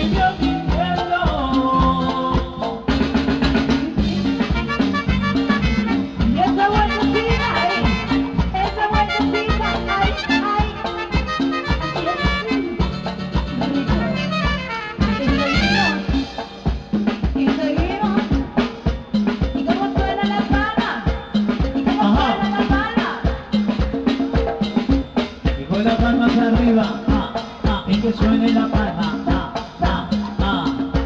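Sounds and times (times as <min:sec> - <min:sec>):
congas: 0:00.0 - 0:31.0
latin dance orchestra: 0:00.0 - 0:31.0
horns: 0:04.3 - 0:16.6.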